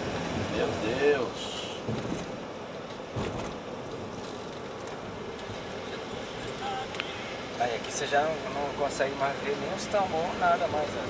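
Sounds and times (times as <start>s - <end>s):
car road noise inside cabin: 0.0s - 11.0s.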